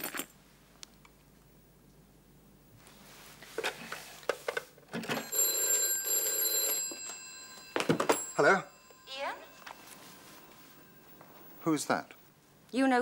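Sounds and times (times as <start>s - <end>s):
telephone bell ringing: 5.0s - 11.6s.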